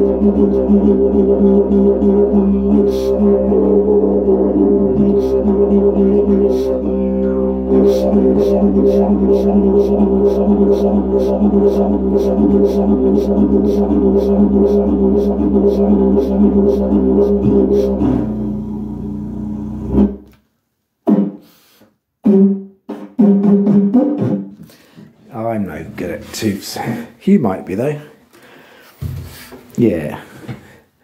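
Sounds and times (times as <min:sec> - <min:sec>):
didgeridoo drone with rhythmic accents: 0:00.0 - 0:20.3.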